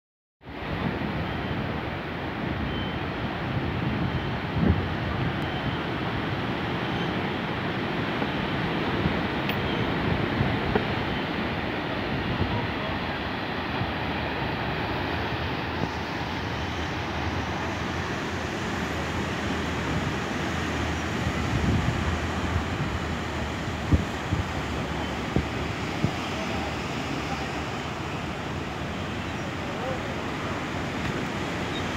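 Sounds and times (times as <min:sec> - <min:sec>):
wind buffeting microphone: 0:00.6 - 0:31.9.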